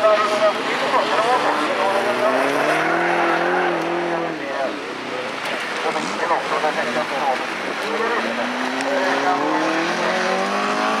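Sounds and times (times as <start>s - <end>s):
car engine accelerating: 1.4s - 4.4s, 7.8s - 11.0s.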